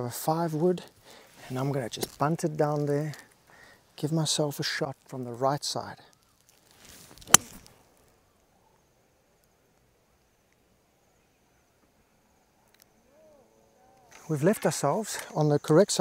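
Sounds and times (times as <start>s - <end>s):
golf club swish: 6.9s - 7.7s
clubhead striking golf ball: 7.3s - 7.7s.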